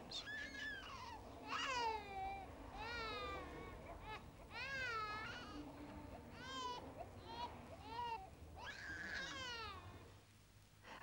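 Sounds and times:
newborn baby crying: 0:06.4 - 0:10.0.

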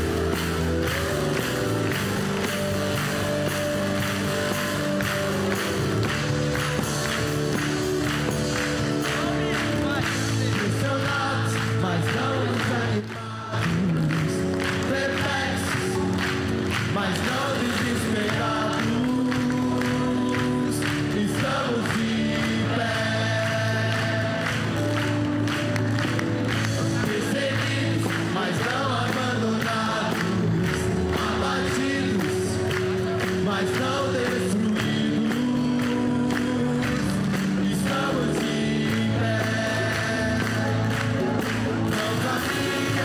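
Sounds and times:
band playing steady beat: 0:00.0 - 0:43.0
choir singing gospel song: 0:08.6 - 0:25.1, 0:26.6 - 0:43.0.

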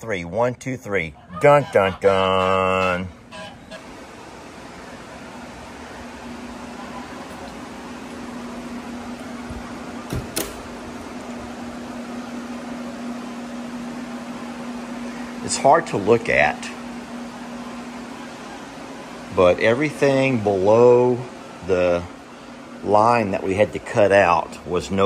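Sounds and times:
fans rushing air with hum: 0:00.0 - 0:25.0.

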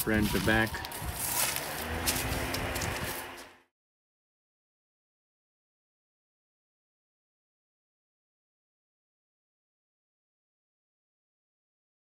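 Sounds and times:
footsteps rustling and scuffing: 0:00.0 - 0:03.6.

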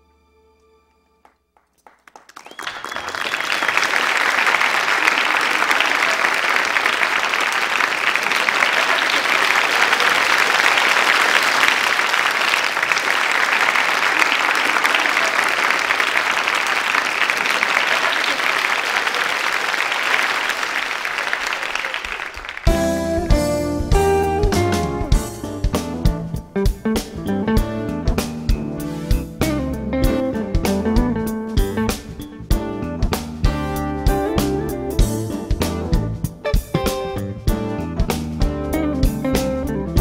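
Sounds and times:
audience applauding: 0:01.2 - 0:23.3.

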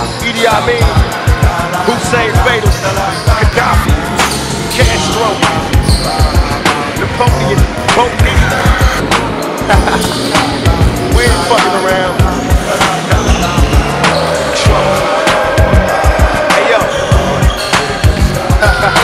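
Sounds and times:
hip-hop beat: 0:00.0 - 0:19.0
sneaker squeaks: 0:01.9 - 0:07.5, 0:09.8 - 0:14.6, 0:16.6 - 0:18.2.

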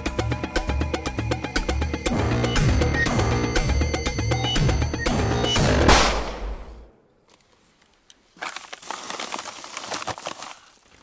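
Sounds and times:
gunshot: 0:05.8 - 0:06.8.

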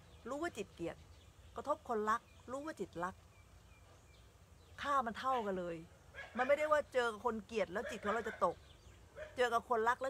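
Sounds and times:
woman speaking: 0:00.2 - 0:03.3, 0:04.8 - 0:08.6, 0:09.2 - 0:10.0.

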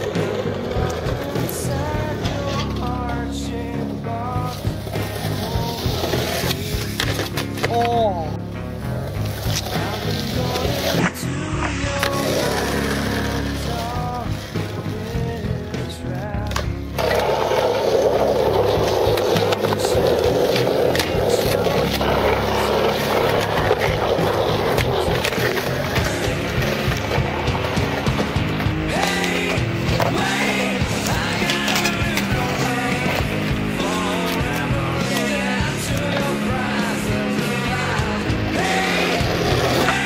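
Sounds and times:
skateboard clacks: 0:00.0 - 0:03.3, 0:09.2 - 0:40.0
rock music with singing: 0:00.0 - 0:40.0
skateboard wheels rolling on concrete: 0:00.0 - 0:40.0.

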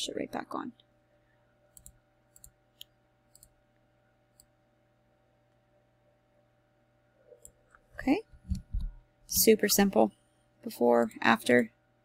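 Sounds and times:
person speaking: 0:08.0 - 0:11.7.

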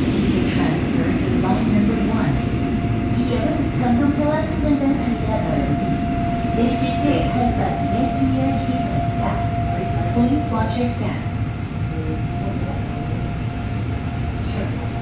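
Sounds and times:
steady high whine: 0:00.0 - 0:15.0
train rumbling through tunnel: 0:00.0 - 0:15.0.

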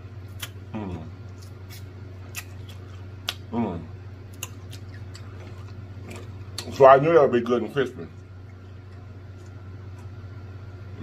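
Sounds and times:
low hum: 0:00.0 - 0:11.0
chewing and lip smacking: 0:00.3 - 0:00.7, 0:01.3 - 0:03.5, 0:04.3 - 0:06.8, 0:08.1 - 0:10.1.

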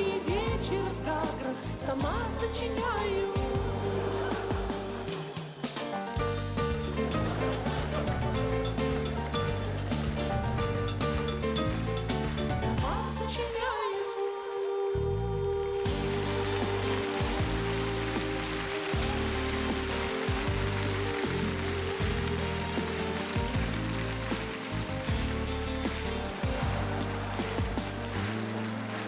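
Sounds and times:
live pop band music: 0:00.0 - 0:13.8, 0:15.4 - 0:29.0
audience applauding: 0:03.5 - 0:05.7, 0:06.5 - 0:13.2, 0:15.7 - 0:29.0.

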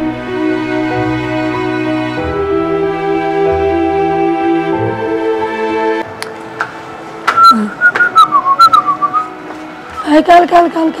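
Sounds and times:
person whistling a tune: 0:07.4 - 0:09.3.

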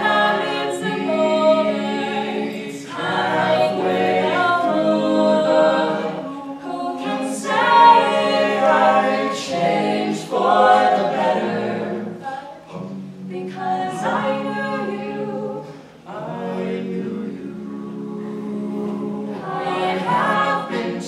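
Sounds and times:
group singing in harmony: 0:00.0 - 0:21.0.

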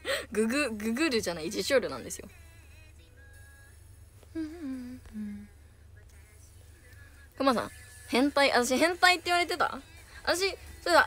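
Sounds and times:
woman humming: 0:04.3 - 0:05.6.

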